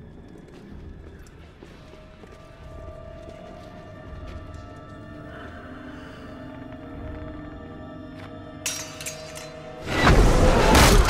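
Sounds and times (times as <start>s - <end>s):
dark tense film score: 0.0s - 11.0s.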